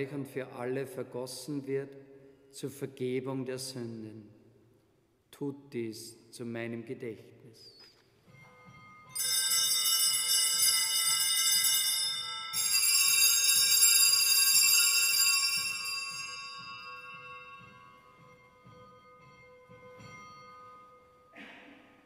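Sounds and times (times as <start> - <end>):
small bells jangling: 8.3 - 21.4.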